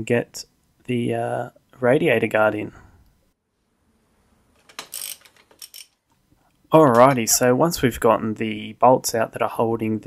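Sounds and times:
ratchet wrench clicking: 4.8s - 6.0s.

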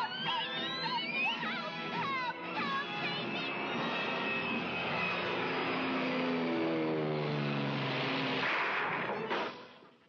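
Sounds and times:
rushing vehicle roar effect: 0.0s - 10.0s.

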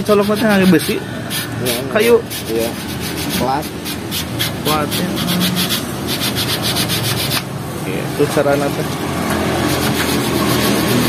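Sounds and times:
plate scraping radiator tubes: 9.3s - 11.0s.

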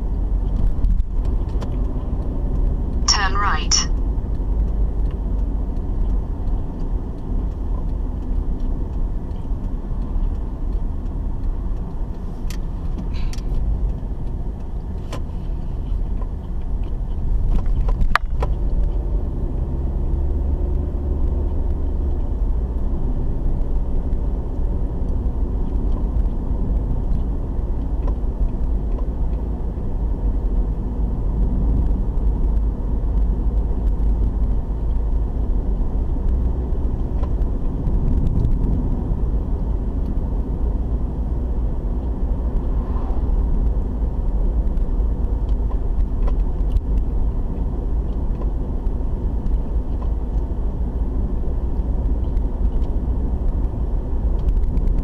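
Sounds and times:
car engine rumble: 0.0s - 55.0s
tyre road noise: 0.0s - 55.0s.

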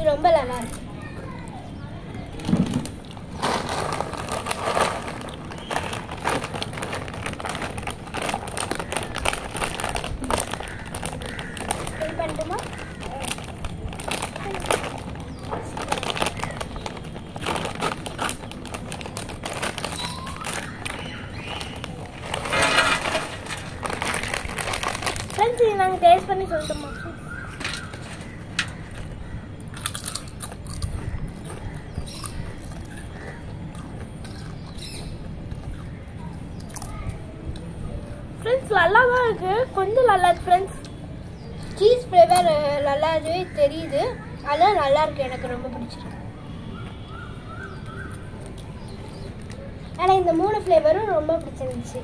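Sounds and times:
plastic chip packet crinkling: 2.8s - 26.8s, 27.5s - 34.8s
chips poured onto a steel plate: 22.2s - 23.8s.

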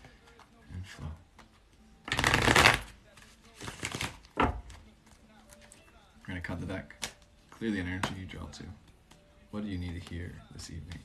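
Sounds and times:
cards being riffle-shuffled: 1.3s - 5.8s.

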